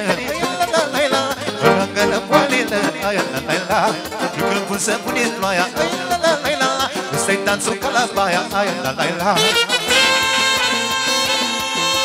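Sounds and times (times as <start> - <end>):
band playing folk dance music: 0.0 - 12.0.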